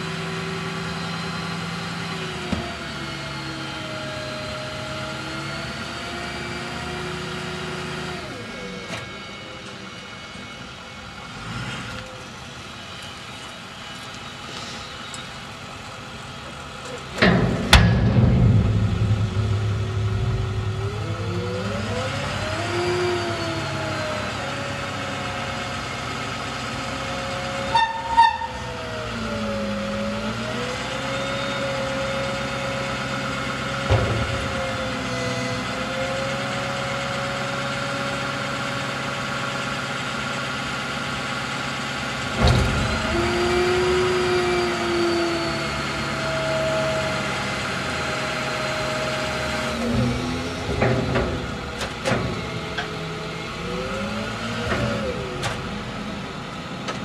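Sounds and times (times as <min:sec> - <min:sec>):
truck engine running under load: 0:00.0 - 0:57.0
hydraulic arm lifting bin: 0:13.0 - 0:25.3, 0:31.1 - 0:38.6, 0:41.9 - 0:57.0
sharp metal knocks: 0:17.2 - 0:23.1.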